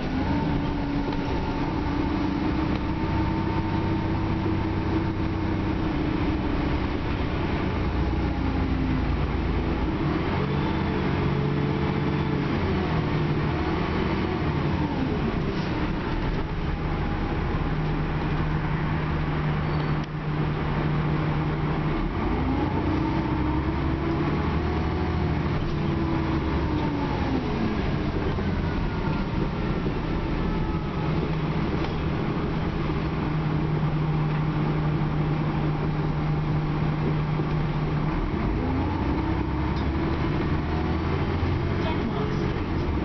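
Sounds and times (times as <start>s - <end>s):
bus engine rumble and whine: 0.0s - 43.0s
road noise: 0.0s - 43.0s.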